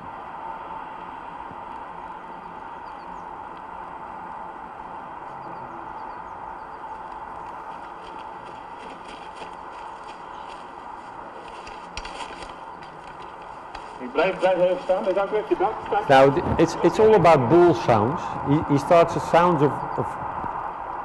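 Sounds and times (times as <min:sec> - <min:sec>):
faint steady hum: 0:00.0 - 0:21.0
person speaking: 0:13.8 - 0:20.2.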